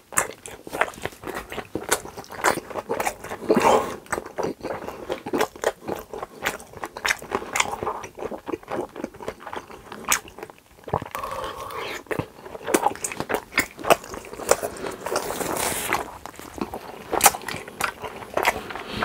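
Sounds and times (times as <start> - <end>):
wet chewing and mouth smacks: 0.0 - 19.0.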